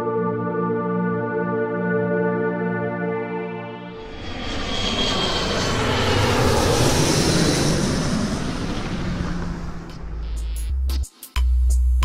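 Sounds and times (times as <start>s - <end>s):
airplane flying by: 3.5s - 10.6s
ambient synth tones: 7.6s - 10.9s.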